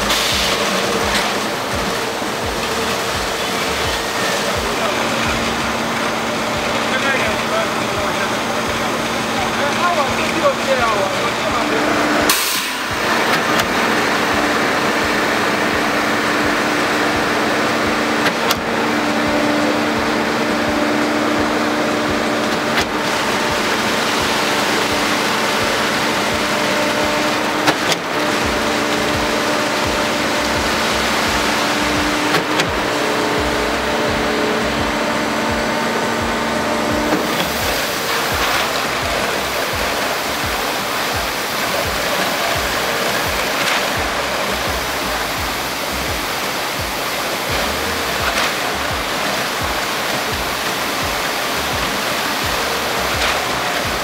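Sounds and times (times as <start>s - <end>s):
concrete mixer and pump drone: 0.0s - 54.0s
concrete sliding down chute: 0.0s - 54.0s
steady hiss: 0.0s - 54.0s.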